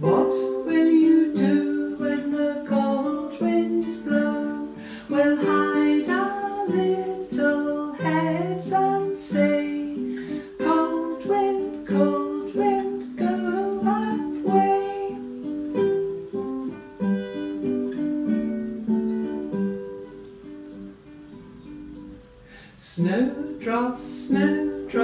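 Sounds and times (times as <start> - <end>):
classical guitar picking: 0.0 - 25.0.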